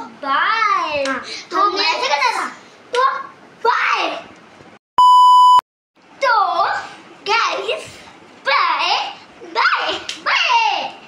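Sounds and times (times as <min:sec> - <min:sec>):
high test-tone beep: 0:05.0 - 0:05.6.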